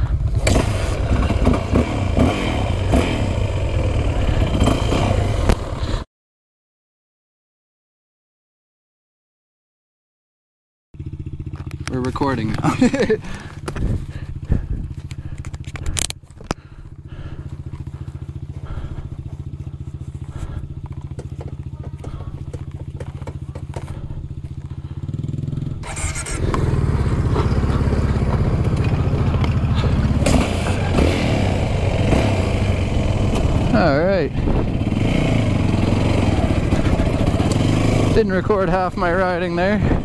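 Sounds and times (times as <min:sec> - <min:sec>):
dirt bike engine: 0:00.0 - 0:06.0, 0:11.0 - 0:40.0
tyres on gravel: 0:11.0 - 0:40.0
wind noise: 0:13.4 - 0:16.1, 0:34.3 - 0:35.1, 0:39.6 - 0:40.0.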